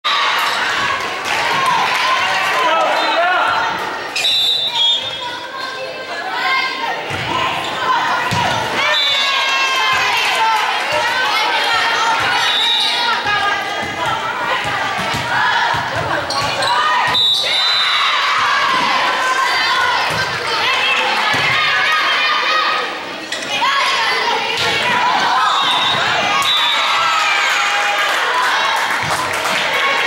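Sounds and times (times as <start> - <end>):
voices talking and calling out: 0.1 - 30.0.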